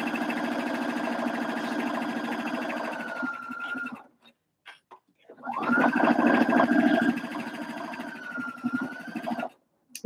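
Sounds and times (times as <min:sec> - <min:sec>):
sewing machine stitching: 0:00.0 - 0:04.3, 0:05.3 - 0:09.6.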